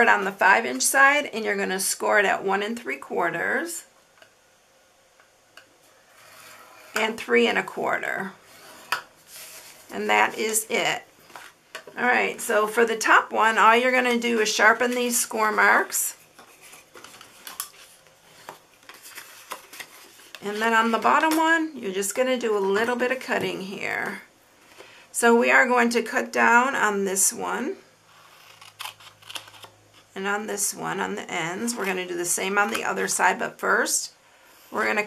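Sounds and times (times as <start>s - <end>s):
paper rubbing and rustling: 8.5s - 9.9s, 16.4s - 21.0s.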